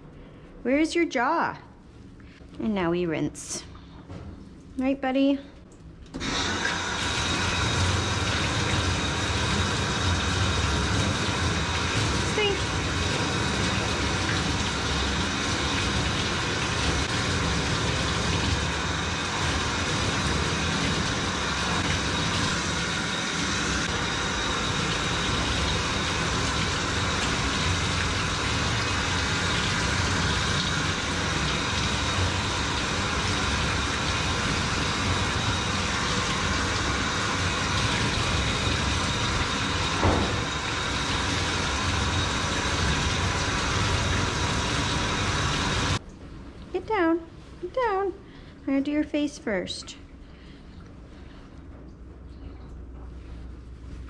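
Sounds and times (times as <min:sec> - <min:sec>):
water spraying from sprayer: 0:06.2 - 0:46.0.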